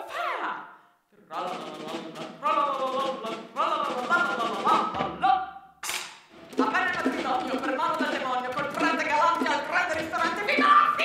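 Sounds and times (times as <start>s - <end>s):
light percussive taps: 6.5s - 10.6s.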